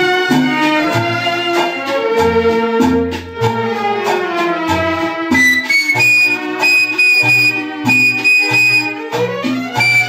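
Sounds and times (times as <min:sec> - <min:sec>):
flute holding high notes: 0:05.3 - 0:09.0, 0:09.8 - 0:10.0.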